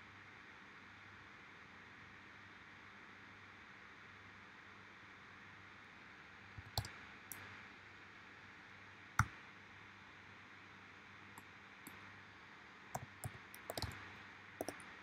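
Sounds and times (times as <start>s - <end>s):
computer mouse clicks: 6.6s - 7.5s, 13.0s - 15.0s.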